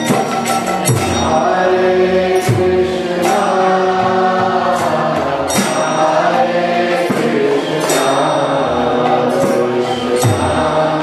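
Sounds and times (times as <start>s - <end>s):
instrumental accompaniment: 0.0s - 11.0s
voices chanting a mantra: 1.0s - 11.0s.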